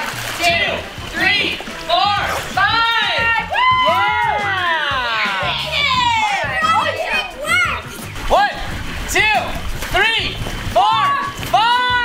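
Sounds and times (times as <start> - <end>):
background music: 0.0 - 12.0
high voices shouting: 0.4 - 9.4, 10.0 - 12.0.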